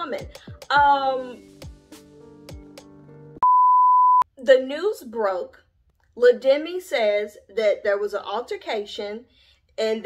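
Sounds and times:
faint background music: 0.0s - 2.5s
loud steady test tone beep: 3.4s - 4.3s.

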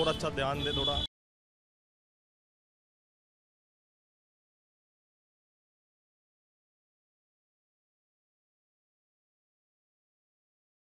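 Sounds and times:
man speaking: 0.0s - 1.1s.

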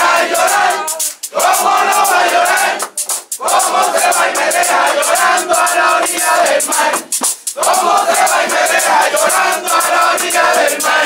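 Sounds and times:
crowd singing in chorus: 0.0s - 11.0s
frame drums beating: 0.0s - 11.0s.

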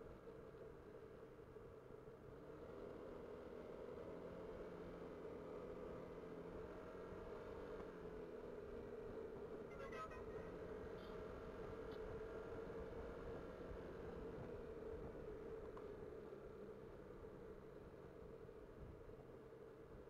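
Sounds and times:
muffled motorcycle drone: 0.0s - 20.0s.

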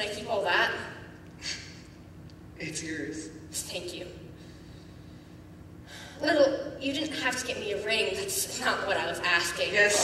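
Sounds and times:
faint hiss and hum: 0.0s - 10.0s.

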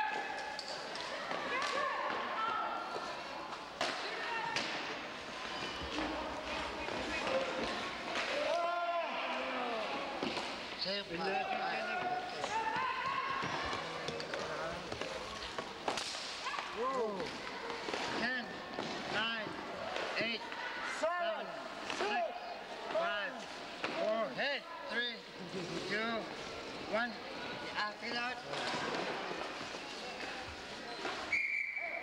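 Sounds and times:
hockey sticks clacking: 3.0s - 8.7s, 10.1s - 10.7s, 11.8s - 18.2s
shoes squeaking on floor: 5.4s - 6.2s, 29.5s - 32.0s
people shouting: 8.2s - 10.2s, 11.2s - 13.8s
hockey stick crack: 13.7s - 18.2s.

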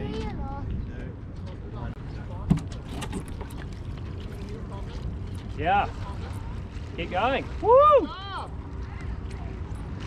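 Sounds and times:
wind rumble on microphone: 0.0s - 10.0s
water splashes: 2.3s - 10.0s.

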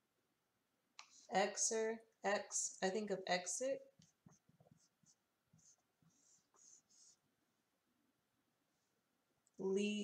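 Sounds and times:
marker scratching on paper: 3.9s - 7.3s.

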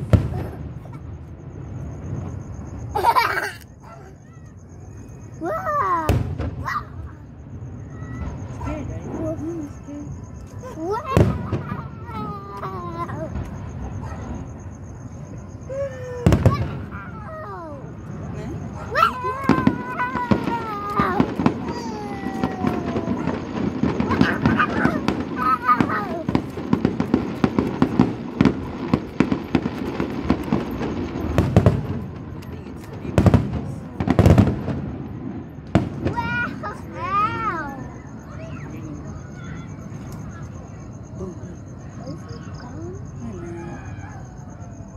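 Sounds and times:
fireworks going off: 0.0s - 43.4s.

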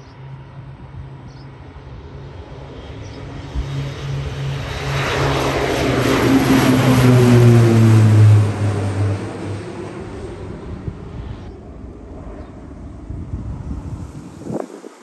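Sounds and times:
turboprop plane taking off: 0.0s - 15.0s.

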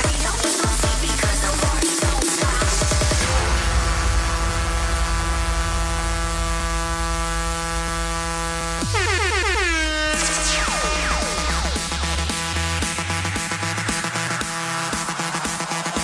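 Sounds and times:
electronic music over loudspeakers: 0.0s - 16.0s.

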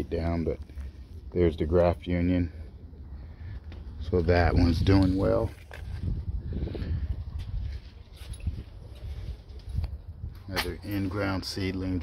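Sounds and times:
camera handling rumble: 4.8s - 11.0s.

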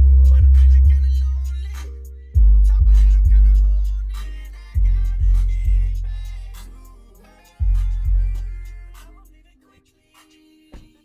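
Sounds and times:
hip-hop through car subwoofer: 0.0s - 9.5s.

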